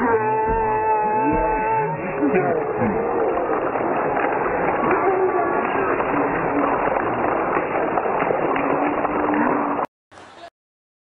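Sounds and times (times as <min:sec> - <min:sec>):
audience clapping: 0:01.2 - 0:09.9.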